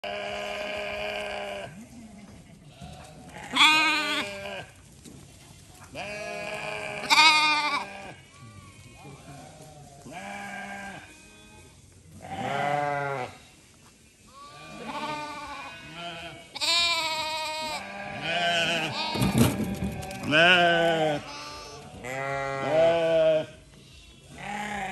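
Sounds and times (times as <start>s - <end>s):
sheep bleating: 0.0s - 1.8s, 2.6s - 4.7s, 6.0s - 13.4s, 14.3s - 24.9s.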